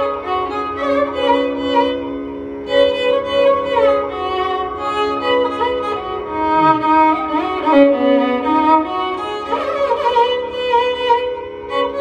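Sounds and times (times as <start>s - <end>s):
electronic tanpura drone: 0.0s - 12.0s
violin playing ornamented melody: 0.0s - 12.0s.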